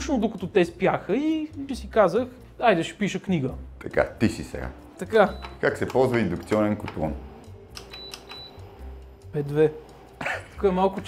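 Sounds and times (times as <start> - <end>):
short high beeps: 7.9 - 8.6.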